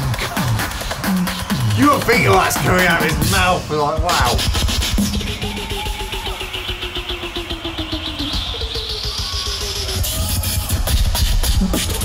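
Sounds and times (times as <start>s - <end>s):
beatboxing bass pulse: 0.0s - 12.0s
beatboxing high rising sweep: 0.0s - 12.0s.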